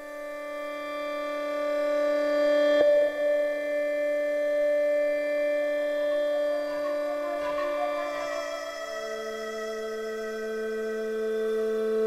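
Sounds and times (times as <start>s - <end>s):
synthesizer pad chord: 3.0s - 12.0s.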